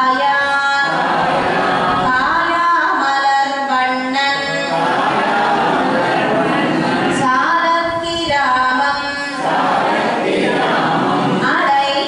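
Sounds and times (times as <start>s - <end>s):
woman singing unaccompanied: 0.0s - 0.9s, 1.9s - 4.7s, 7.2s - 9.4s, 11.4s - 12.0s.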